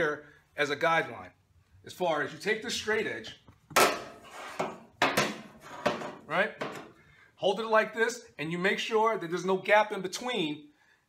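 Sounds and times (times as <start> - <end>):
metal straight edge scraping knocks: 3.7 - 6.9.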